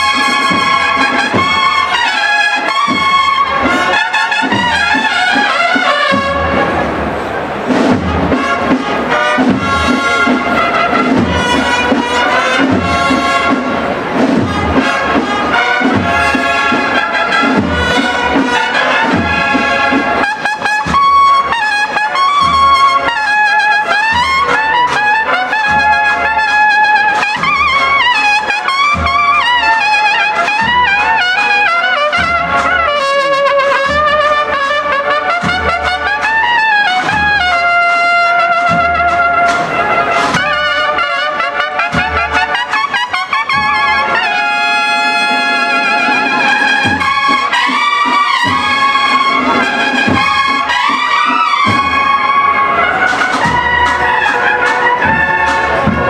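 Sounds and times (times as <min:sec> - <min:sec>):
brass marching band: 0:00.0 - 0:56.0.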